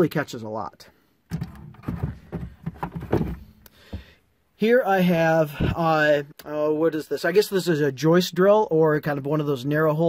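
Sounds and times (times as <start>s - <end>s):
short hollow thuds: 1.3s - 4.2s.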